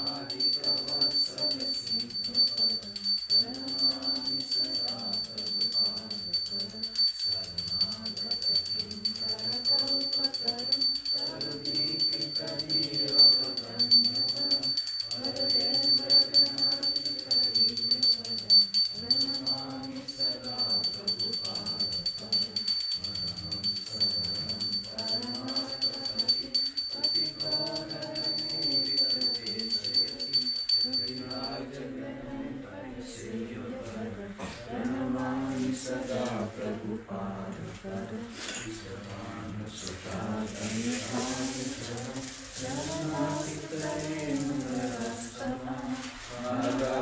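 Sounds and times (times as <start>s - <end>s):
hand cymbals jangling: 0.0s - 31.6s
high ringing tone: 0.0s - 31.6s
voices singing a chant: 0.0s - 47.0s.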